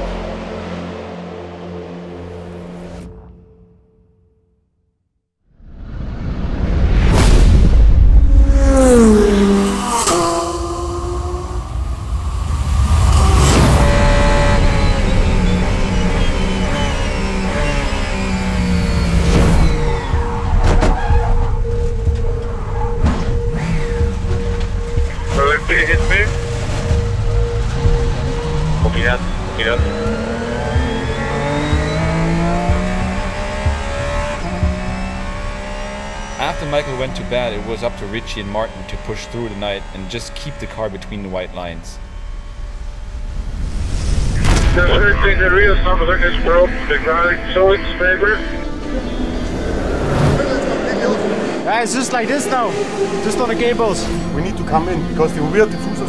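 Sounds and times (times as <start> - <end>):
race car engine revving: 8.0 - 43.8, 44.4 - 56.0.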